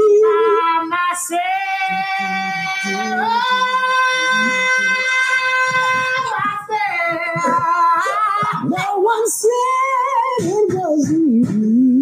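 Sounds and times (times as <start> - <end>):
woman singing into a microphone: 0.0 - 12.0.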